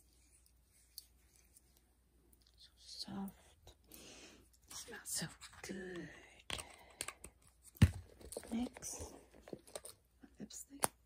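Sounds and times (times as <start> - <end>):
woman speaking softly: 2.6 - 3.6, 4.7 - 6.4, 8.5 - 9.1, 10.2 - 10.8.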